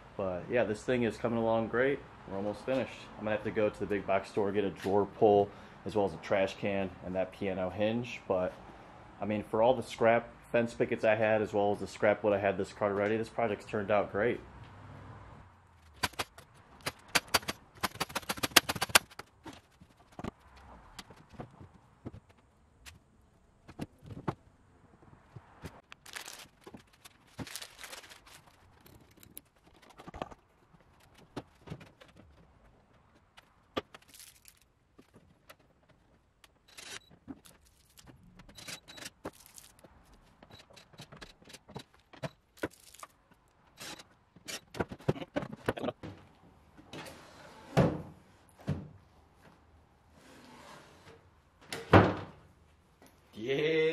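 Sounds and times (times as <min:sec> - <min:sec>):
fast run of clicks: 0:15.8 - 0:21.3
wooden cart parts knocking: 0:15.8 - 0:22.5, 0:44.4 - 0:46.3.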